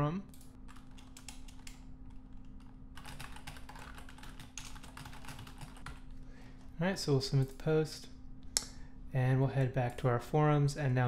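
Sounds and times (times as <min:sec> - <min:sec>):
typing on keyboard: 0:00.4 - 0:06.0.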